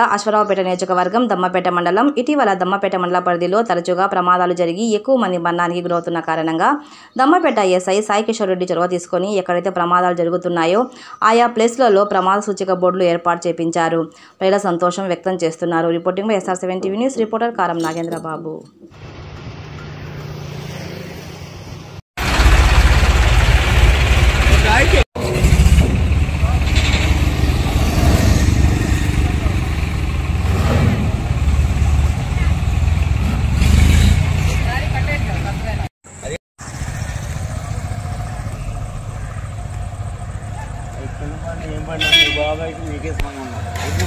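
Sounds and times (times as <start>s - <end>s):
highway traffic passing: 19.0s - 44.0s
heavy low rumble: 22.2s - 33.6s.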